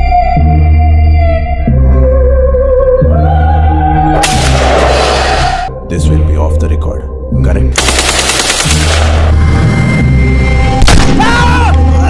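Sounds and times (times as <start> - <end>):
background music with deep bass: 0.0 - 12.0
machine-gun fire: 7.8 - 9.1
loud gunshot: 10.8 - 11.3.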